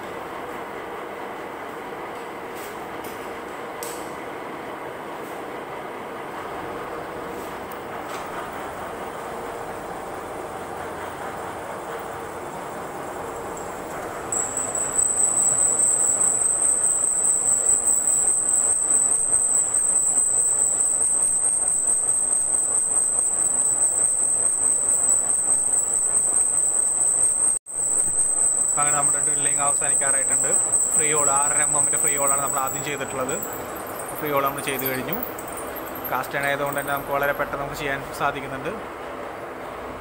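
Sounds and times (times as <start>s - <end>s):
pillar drill running: 6.8s - 38.1s
high-pitched whine: 8.1s - 38.4s.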